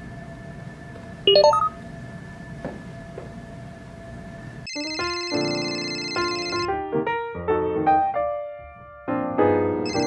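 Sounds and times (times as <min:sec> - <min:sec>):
phone ringtone melody: 0:04.7 - 0:06.7.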